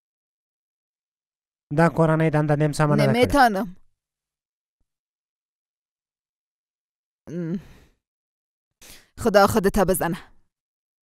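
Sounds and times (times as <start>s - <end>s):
person sighing: 7.3s - 7.9s.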